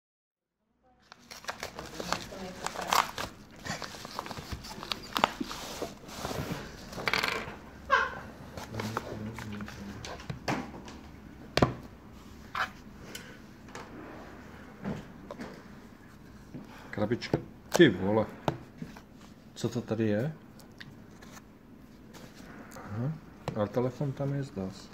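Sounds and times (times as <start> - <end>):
padded envelope rustling and tearing: 1.0 - 6.8.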